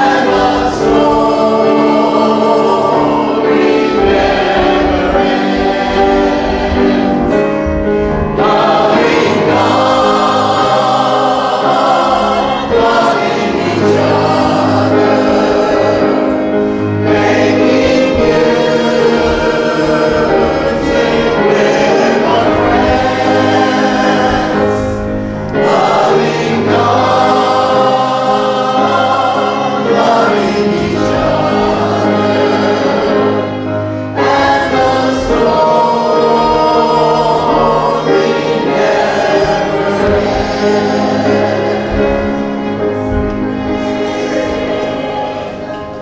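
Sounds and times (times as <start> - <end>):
congregation singing: 0.0 - 46.0.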